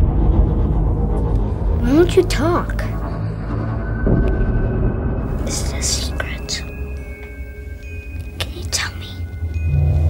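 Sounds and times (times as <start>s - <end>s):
low droning horror score: 0.0s - 7.9s
person whispering: 5.5s - 6.8s, 8.3s - 9.4s.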